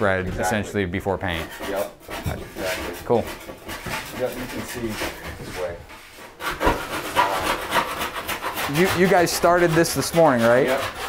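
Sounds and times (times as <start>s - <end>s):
straight edge scraping wet plaster: 1.2s - 11.0s.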